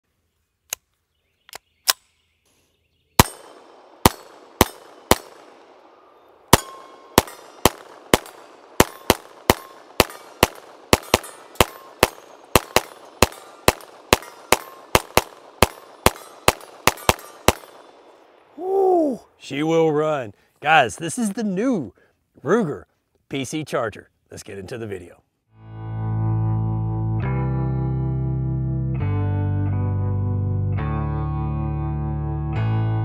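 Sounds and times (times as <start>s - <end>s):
pistol shots with echo: 3.2s - 18.5s.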